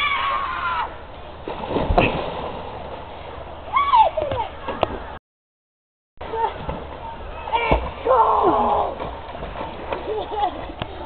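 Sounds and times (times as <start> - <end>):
splash into river: 1.4 - 2.9.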